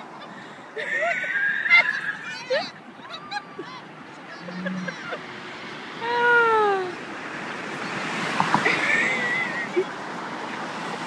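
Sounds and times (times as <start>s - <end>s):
animal calls: 1.0s - 2.7s.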